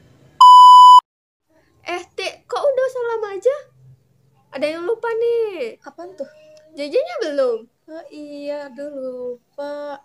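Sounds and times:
high electronic beep: 0.4 - 1.0.

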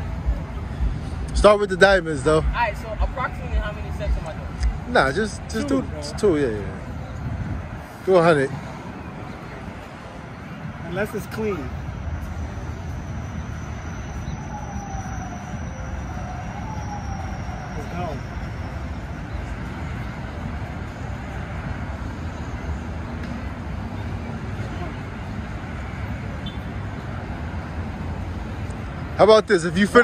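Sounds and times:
highway traffic rumble: 0.0 - 30.0.

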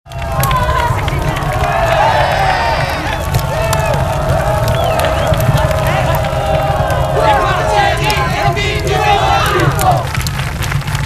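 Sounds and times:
boys shouting and cheering: 0.1 - 10.2
heavy low rumble: 0.1 - 11.0.

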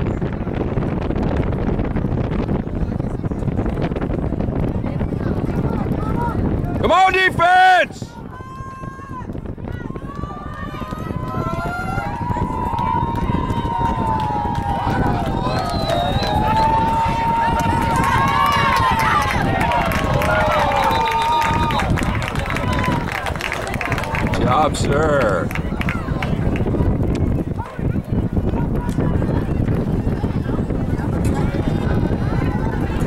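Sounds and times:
crowd yelling and cheering: 2.3 - 33.0.

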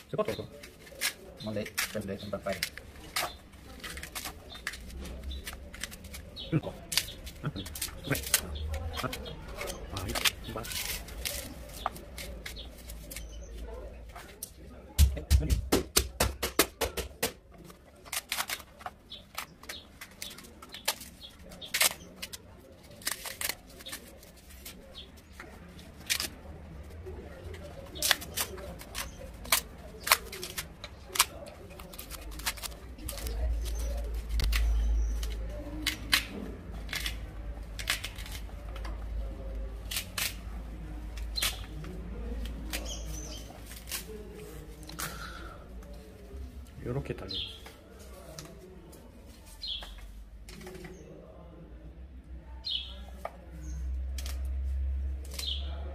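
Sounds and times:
dry fruit pulp crackling and snapping: 0.0 - 51.1, 53.2 - 55.9.

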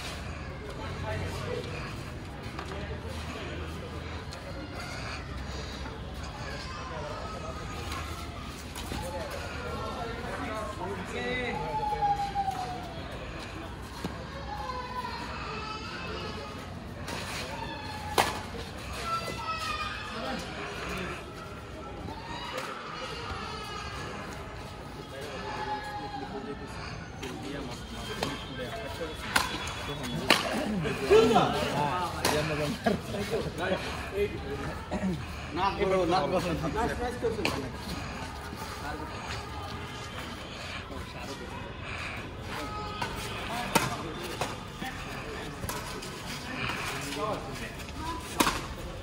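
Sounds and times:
men talking and calling: 0.0 - 49.0
rackets hitting shuttlecock: 29.3 - 30.7.

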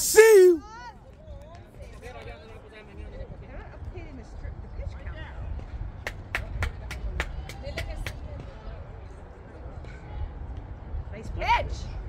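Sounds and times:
faint distant voices: 0.0 - 12.0
wind rumble on microphone: 0.9 - 12.0
sharp hand claps: 6.0 - 8.3.

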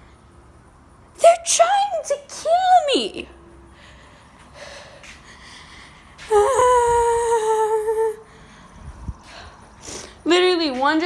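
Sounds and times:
woman talking agitatedly: 1.2 - 3.3, 10.2 - 11.0
woman's drawn-out cry: 6.3 - 8.2.

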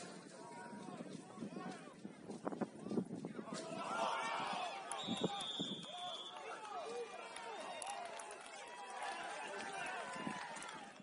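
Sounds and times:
crowd shouting and calling: 2.8 - 11.0.

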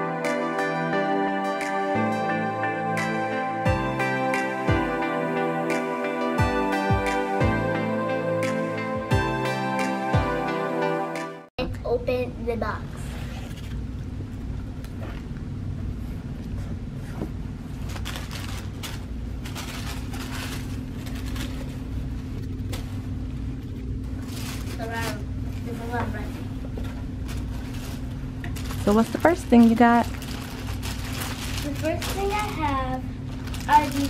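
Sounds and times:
tissue paper and cardboard rustling: 17.8 - 34.0.

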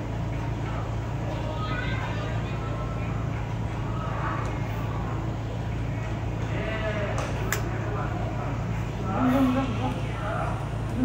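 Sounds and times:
steady low hum: 0.0 - 11.0
child's voice: 1.4 - 2.8.

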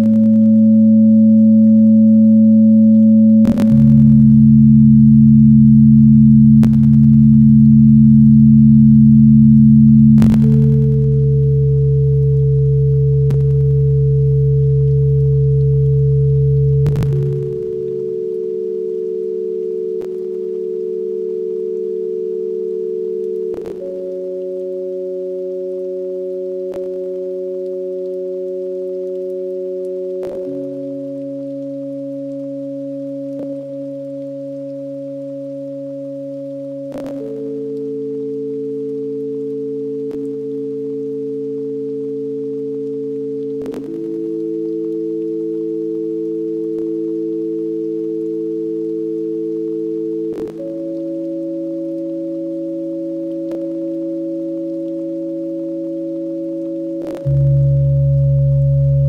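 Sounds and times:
ambient synthesizer drone: 0.0 - 48.3, 49.8 - 59.0.

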